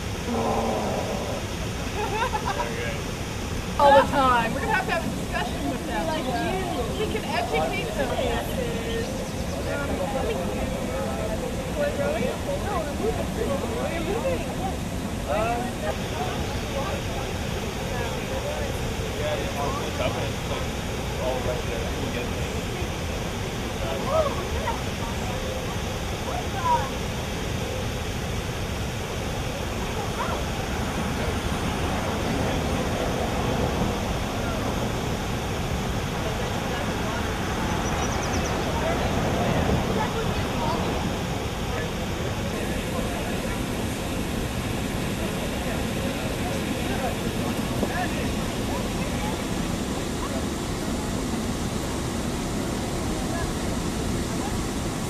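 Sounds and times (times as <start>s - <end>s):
faint chatter of people: 0.0s - 55.0s
steady rushing noise: 0.0s - 55.0s.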